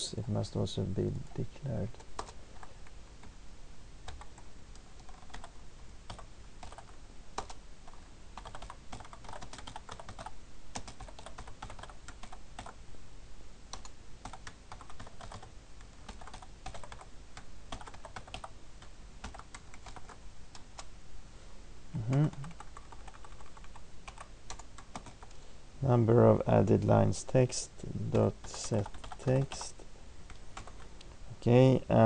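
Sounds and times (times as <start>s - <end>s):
computer keyboard typing: 1.3s - 3.3s, 4.0s - 12.8s, 13.7s - 17.1s, 17.7s - 20.9s, 22.0s - 25.4s, 28.4s - 30.8s.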